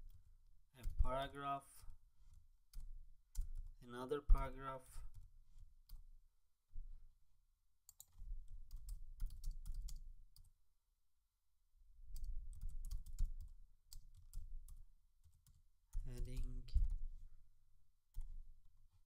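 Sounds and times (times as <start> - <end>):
typing on computer keyboard: 2.2 - 3.8, 7.9 - 10.5, 12.1 - 15.6.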